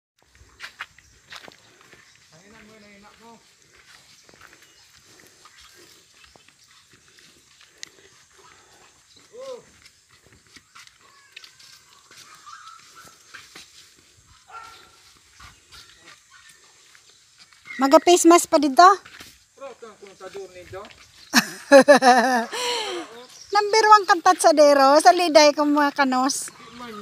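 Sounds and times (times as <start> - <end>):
distant animal calls: 10.6 - 13.4, 26.5 - 27.0.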